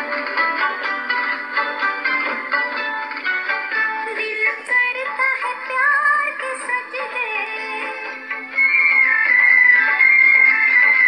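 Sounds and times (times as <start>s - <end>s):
instrumental accompaniment: 0.0s - 11.0s
person singing: 4.0s - 8.2s.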